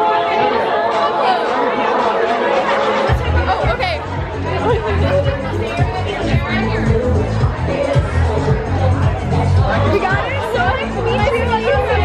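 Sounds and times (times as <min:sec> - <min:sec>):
background music: 0:00.0 - 0:12.0
women chatting excitedly: 0:00.0 - 0:12.0.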